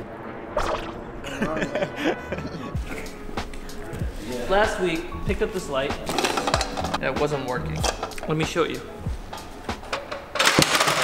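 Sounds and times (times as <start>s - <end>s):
man speaking: 4.1s - 6.1s, 7.0s - 9.0s.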